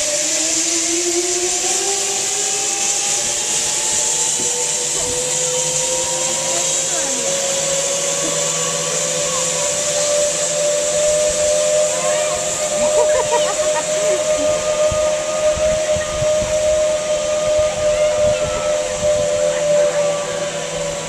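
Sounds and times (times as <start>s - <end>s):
pulleys whining on cable: 0.0s - 21.0s.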